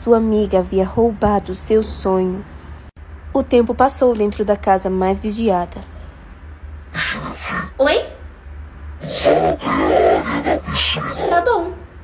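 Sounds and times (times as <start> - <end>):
steady low hum: 0.0 - 12.0
person speaking: 9.0 - 11.8.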